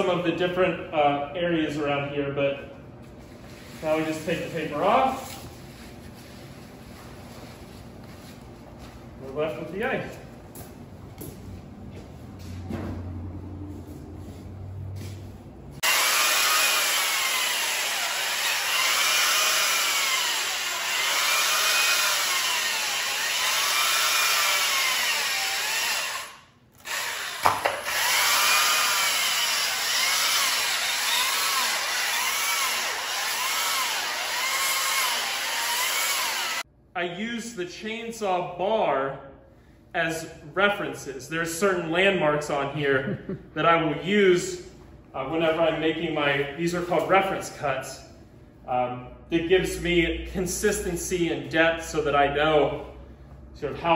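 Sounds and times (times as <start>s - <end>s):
electric chainsaw cutting ice: 15.8s - 36.6s.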